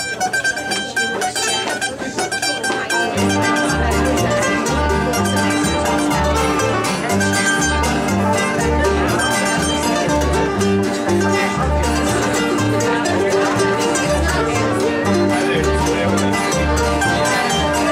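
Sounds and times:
string band playing: 0.0 - 17.9
upright bass beat: 2.2 - 17.9.

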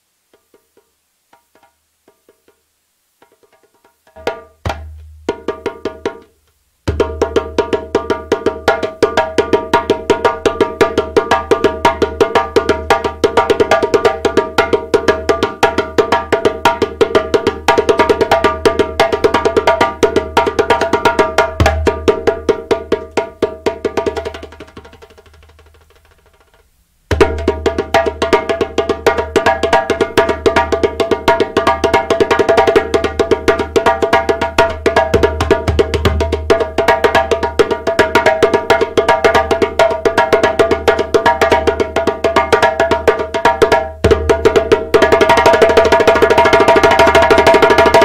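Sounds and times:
djembe hand drumming: 3.2 - 48.0.

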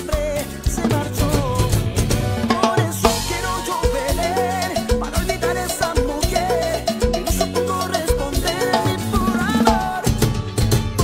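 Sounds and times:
salsa music: 0.0 - 11.0
cowbell struck with sticks: 3.1 - 10.0.

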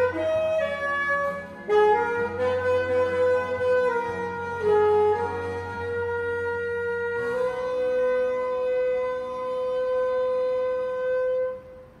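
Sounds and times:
alto saxophone long note: 0.0 - 12.0.

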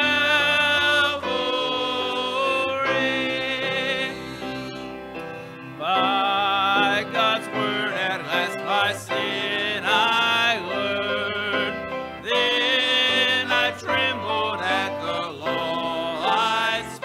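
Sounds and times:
instrumental accompaniment: 0.0 - 17.0
person singing with vibrato: 0.0 - 17.0.

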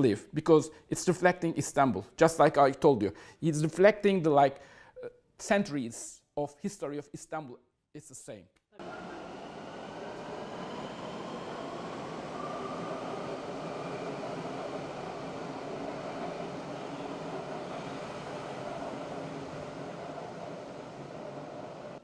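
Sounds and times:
electric train running: 8.8 - 22.0.

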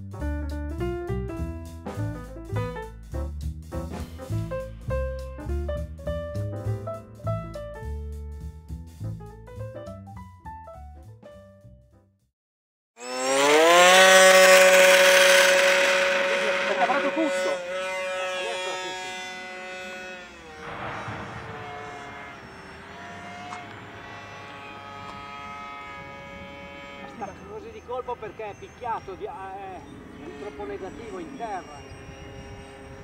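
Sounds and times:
piano music: 0.0 - 11.8
model aircraft propeller motor: 13.0 - 33.0.

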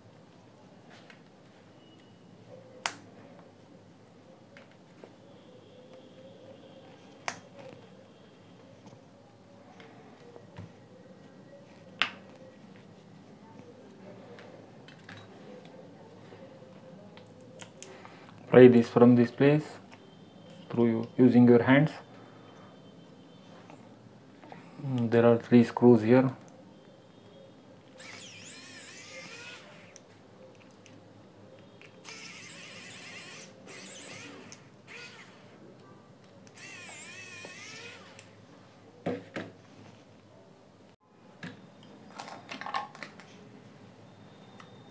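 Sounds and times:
electric screwdriver whirring: 28.0 - 30.0, 32.0 - 35.5, 36.5 - 38.3.

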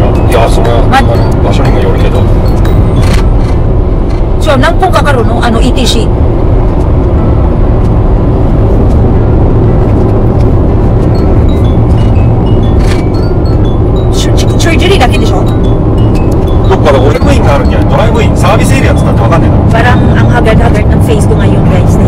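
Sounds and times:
car cabin road and engine rumble: 0.0 - 22.0.

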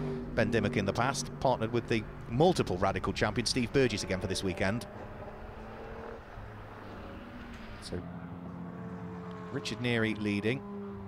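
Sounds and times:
race car engine passing: 0.0 - 11.0.

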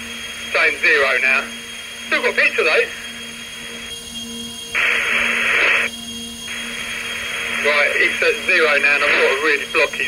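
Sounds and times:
radio static hiss: 0.0 - 3.9, 4.7 - 5.9, 6.5 - 10.0
steady low hum: 0.0 - 10.0.

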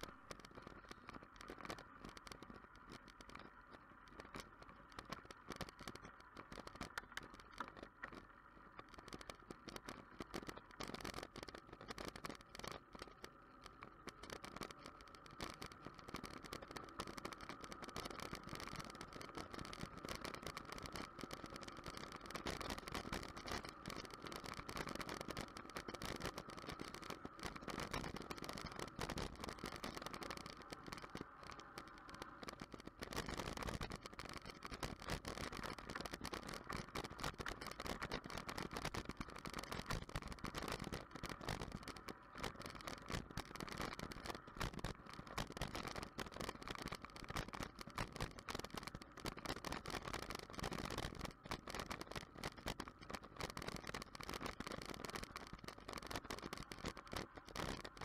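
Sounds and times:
bicycle tyre and road noise: 0.0 - 58.0
fast rattling and clicking: 0.0 - 58.0.

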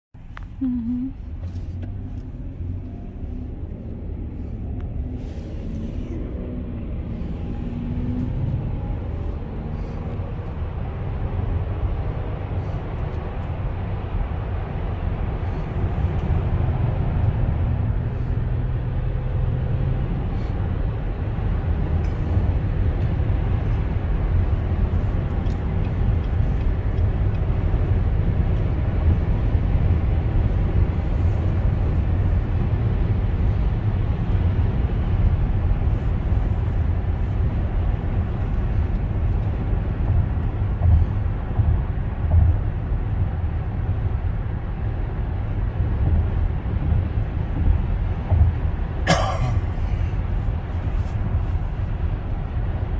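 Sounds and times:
car road noise at highway speed: 0.1 - 52.9.

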